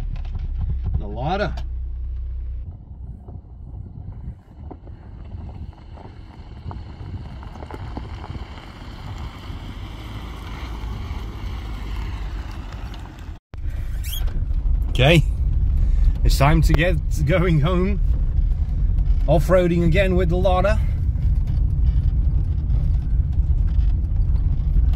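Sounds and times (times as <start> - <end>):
car engine at low revs: 0.0 - 24.9
wind rumble on microphone: 0.0 - 24.9.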